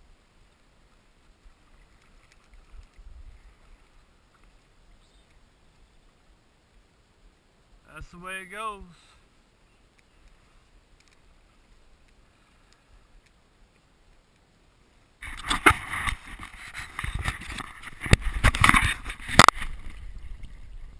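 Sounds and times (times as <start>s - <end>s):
camera housing rubbing and knocking: 15.2s - 20.0s.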